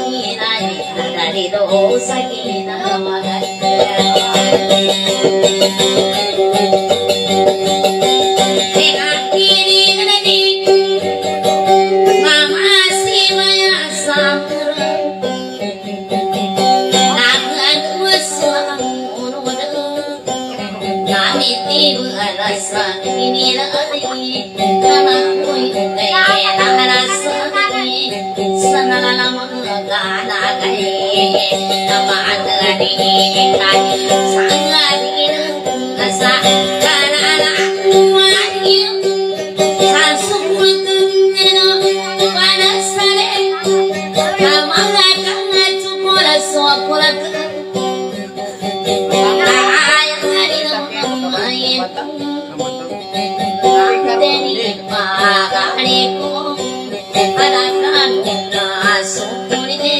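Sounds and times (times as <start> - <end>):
amplified acoustic guitar: 0.0 - 59.9
high wavering singing: 0.0 - 59.9.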